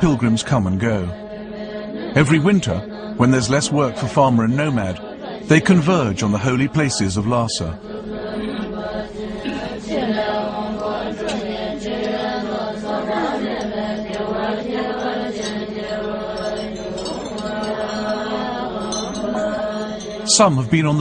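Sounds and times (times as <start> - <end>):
group of voices chanting prayers: 0.0 - 21.0.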